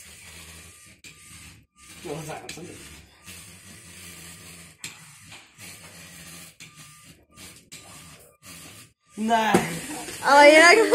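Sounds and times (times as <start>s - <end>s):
small electric motors whirring: 0.0s - 10.9s.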